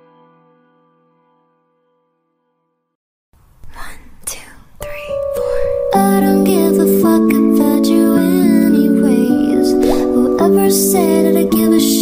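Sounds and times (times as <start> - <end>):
breathy whispered singing: 3.6 - 12.0.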